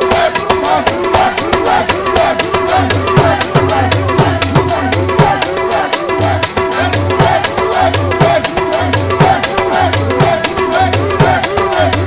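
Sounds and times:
tabla drumming: 0.0s - 12.0s
voices singing: 0.0s - 12.0s.

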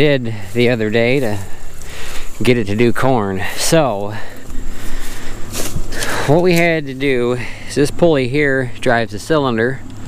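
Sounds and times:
combine harvester rumbling: 0.0s - 10.0s.

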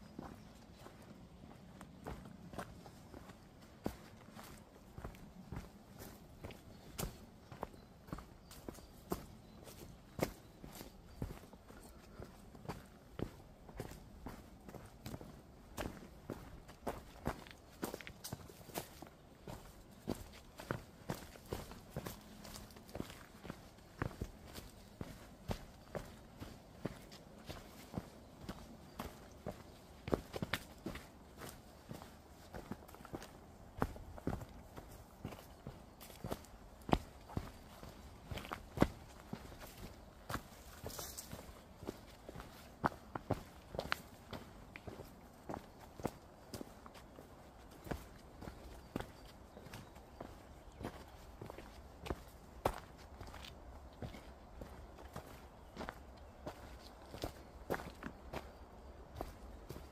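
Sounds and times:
footsteps on a mountain trail: 0.0s - 59.9s.

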